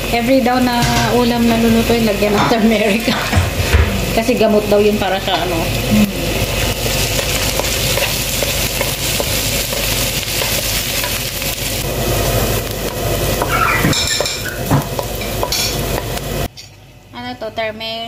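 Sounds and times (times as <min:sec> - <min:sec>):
onion sizzling in hot oil: 0:00.0 - 0:16.5.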